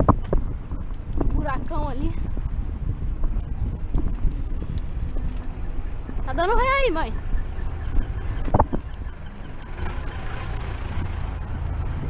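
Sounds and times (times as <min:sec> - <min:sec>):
road rumble: 0:00.0 - 0:12.0
wind buffeting microphone: 0:00.0 - 0:12.0.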